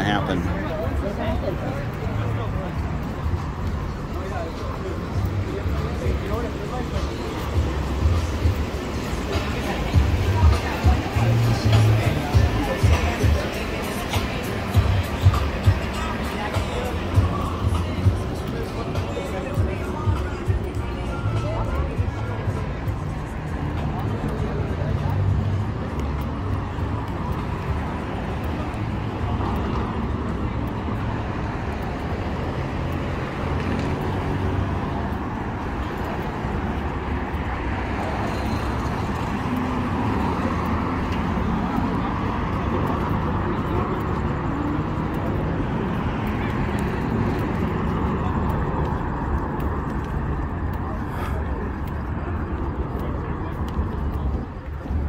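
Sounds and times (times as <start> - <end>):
passing car traffic: 0.0 - 55.0
people talking: 0.0 - 55.0.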